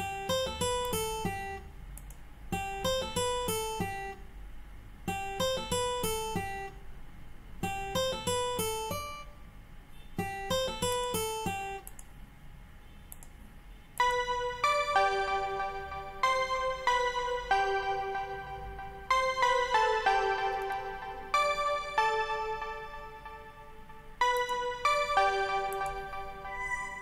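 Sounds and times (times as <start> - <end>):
arpeggiated acoustic guitar: 0.0 - 1.7, 2.5 - 4.2, 5.1 - 6.8, 7.6 - 9.3, 10.0 - 11.8, 14.0 - 27.0
keyboard-like melody: 0.0 - 1.7, 2.5 - 4.3, 5.1 - 6.8, 7.6 - 9.4, 10.2 - 12.0, 13.9 - 27.0.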